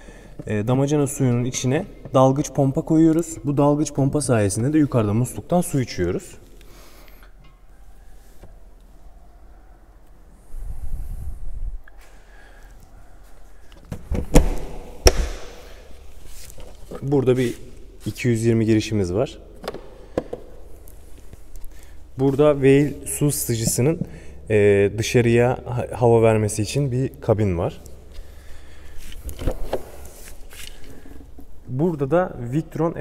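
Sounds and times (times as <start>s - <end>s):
plastic hatch clattering: 13.8s - 15.6s
plastic door knocks latching: 13.9s - 15.5s.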